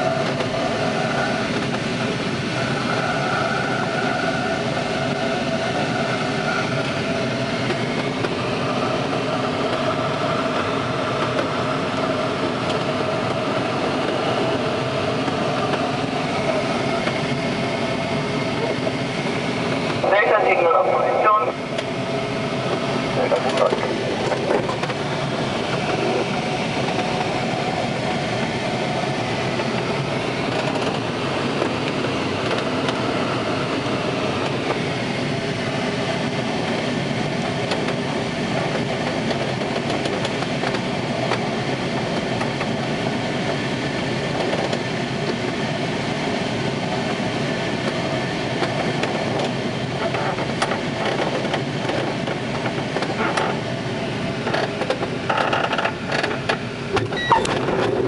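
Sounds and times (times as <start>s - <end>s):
glider wheels rumbling on runway: 0.0s - 58.0s.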